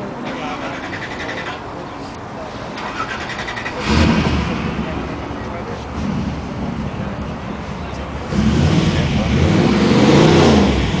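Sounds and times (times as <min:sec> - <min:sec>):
car engine revving: 0:02.8 - 0:11.0.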